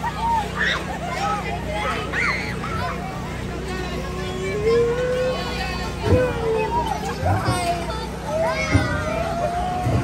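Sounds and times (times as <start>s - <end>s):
children calling out and shrieking: 0.0s - 10.0s
ride motor humming: 0.0s - 10.0s.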